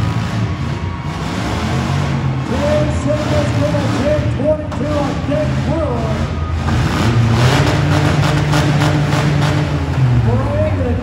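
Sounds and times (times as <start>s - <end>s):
car engines revving: 0.0s - 11.0s.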